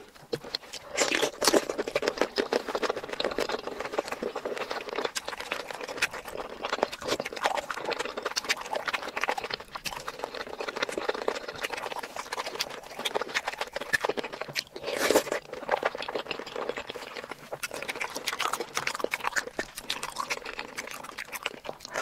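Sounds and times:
person chewing with lip-smacks: 0:00.0 - 0:22.0.

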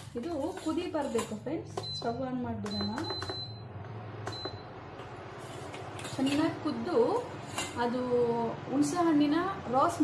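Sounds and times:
cooktop control panel beeps: 0:01.6 - 0:05.0.

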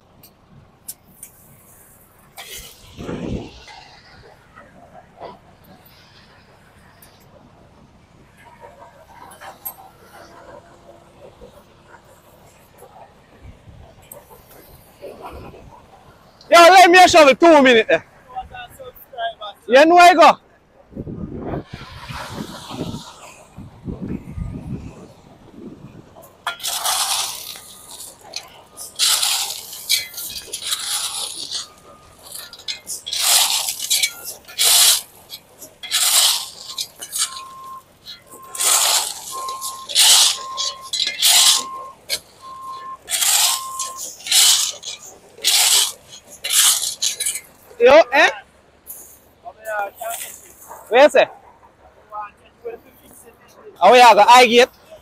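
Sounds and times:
shovel scraping gravel: 0:00.9 - 0:04.7, 0:08.4 - 0:13.0, 0:21.6 - 0:23.7, 0:24.3 - 0:48.3, 0:48.9 - 0:51.3.

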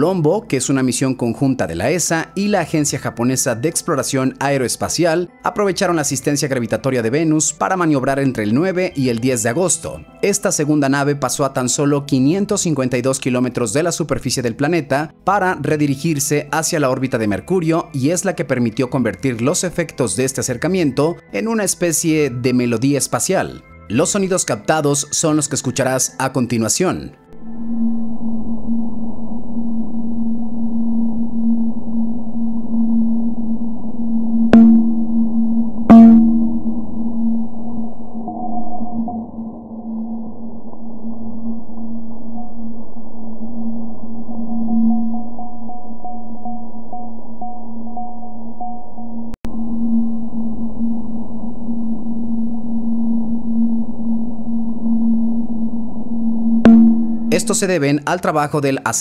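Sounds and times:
faint higher tones: 0:27.3 - 0:57.8
steady low hum: 0:27.4 - 0:57.8.

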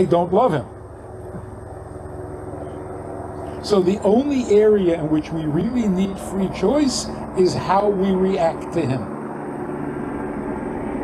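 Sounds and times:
faint hum: 0:00.0 - 0:11.0
low background rumble: 0:00.0 - 0:11.0.

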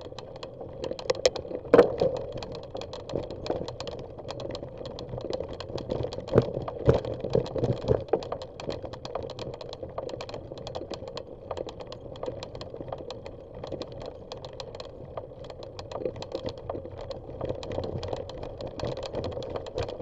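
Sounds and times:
bicycle rattling on dirt trail: 0:00.0 - 0:20.0.

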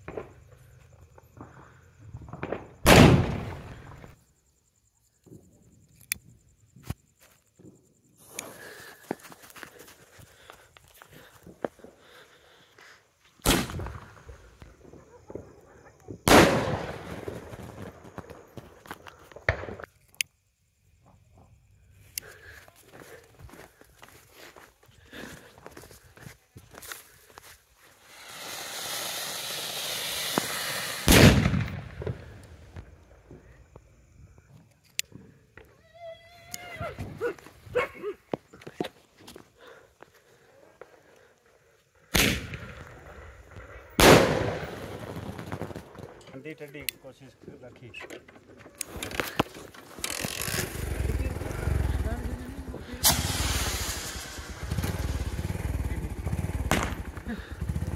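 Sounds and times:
firework shells bursting: 0:02.2 - 0:04.2, 0:13.4 - 0:19.9, 0:27.9 - 0:33.4, 0:42.1 - 0:46.8, 0:48.8 - 0:57.3
firework crackling: 0:16.3 - 0:19.5, 0:27.4 - 0:33.0, 0:42.1 - 0:46.2, 0:48.8 - 0:57.9
fountain firework hissing: 0:27.9 - 0:31.5, 0:50.6 - 0:57.8.

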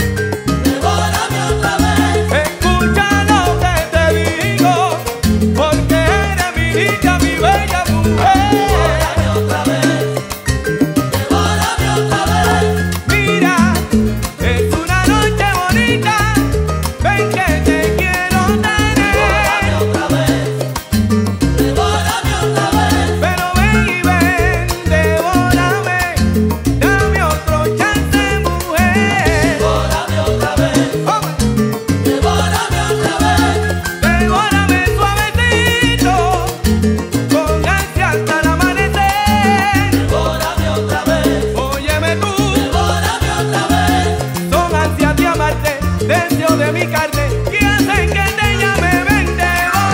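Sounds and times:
live salsa band playing: 0:00.0 - 0:49.9.

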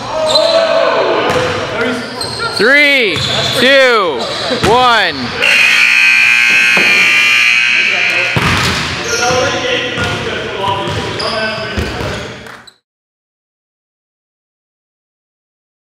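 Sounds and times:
voices in gym: 0:00.0 - 0:12.4
scoreboard buzzer: 0:04.9 - 0:08.7.

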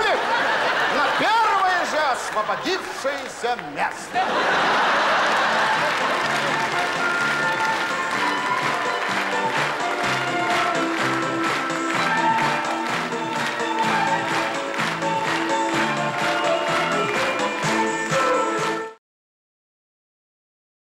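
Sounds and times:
upbeat stage music: 0:00.0 - 0:19.0.

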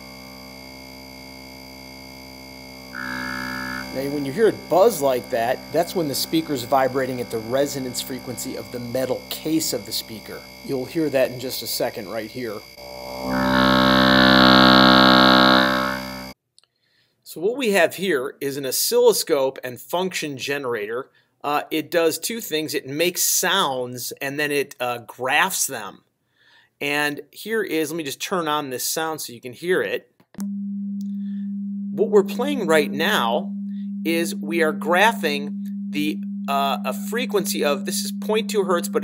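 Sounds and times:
loudspeaker buzzing tone: 0:00.0 - 0:16.4, 0:31.0 - 0:39.0.

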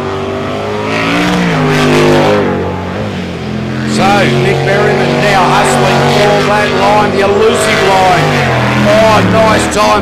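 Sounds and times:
racing boat engine at high revs: 0:00.0 - 0:10.0.

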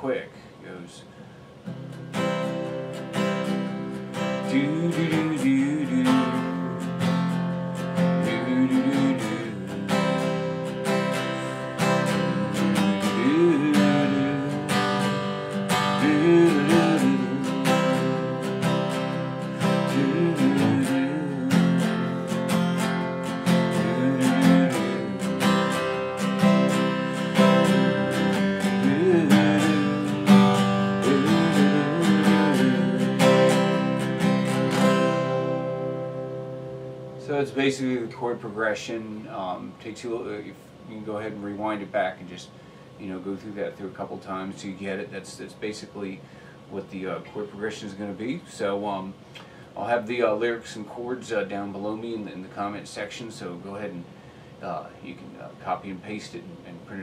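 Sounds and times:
acoustic guitar strumming: 0:01.4 - 0:40.5.

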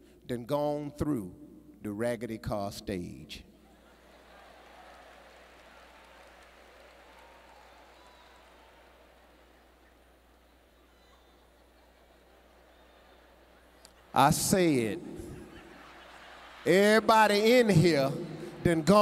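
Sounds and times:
light clapping: 0:04.4 - 0:10.0.

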